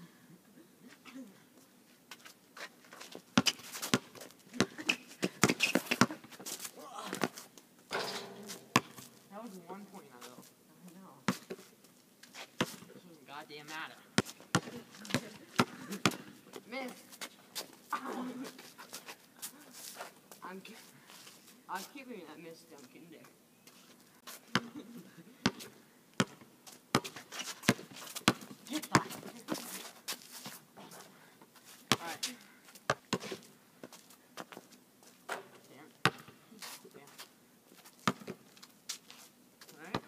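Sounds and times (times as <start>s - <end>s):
basketball dribbling on asphalt: 3.4s - 4.7s.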